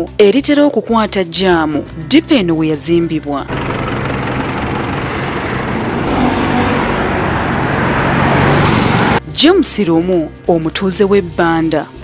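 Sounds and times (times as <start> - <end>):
car engines running: 3.4 - 9.2
tyre and road noise: 3.4 - 9.2.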